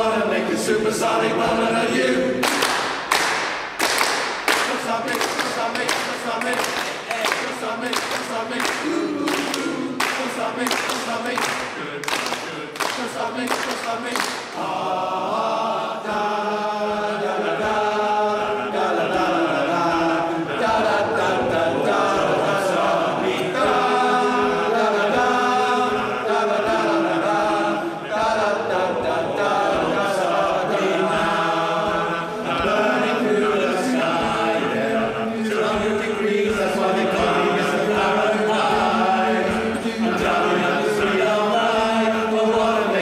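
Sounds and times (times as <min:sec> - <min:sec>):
male choir singing a cappella: 0:00.0 - 0:03.1, 0:04.4 - 0:43.0.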